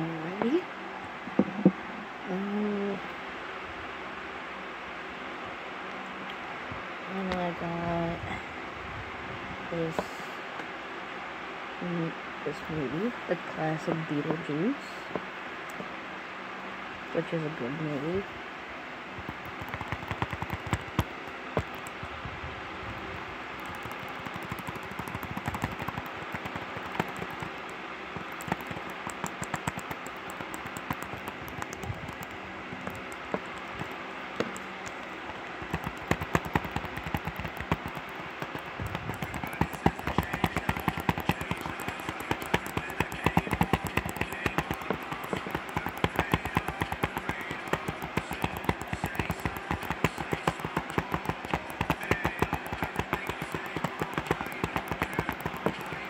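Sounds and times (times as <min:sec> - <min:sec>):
fingernails tapping on plastic case: 0:19.3 - 0:21.9, 0:23.6 - 0:27.6, 0:28.2 - 0:34.6, 0:35.3 - 0:56.0.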